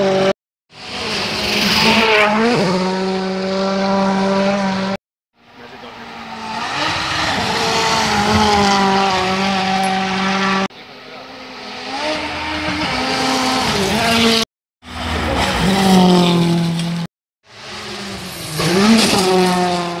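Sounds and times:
rally car engines passing: 0.0s - 20.0s.

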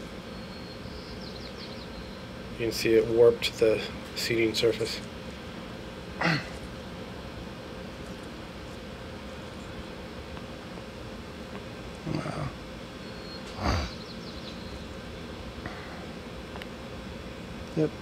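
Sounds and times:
room hum: 0.0s - 18.0s
man laughing: 12.1s - 12.6s.

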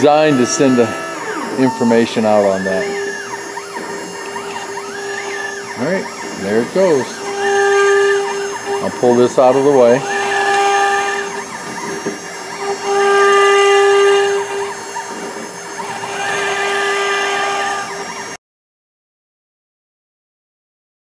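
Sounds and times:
router spindle whine cutting wood: 0.0s - 18.4s.

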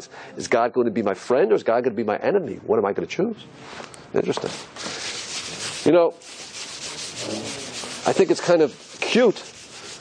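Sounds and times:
scratchy rubbing on a board: 4.4s - 10.0s.

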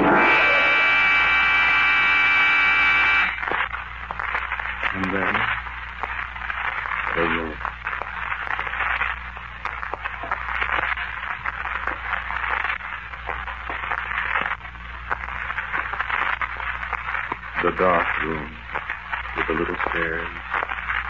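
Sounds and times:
low hum: 0.0s - 19.4s
crackle: 0.0s - 21.0s
recording hiss: 0.0s - 21.0s.

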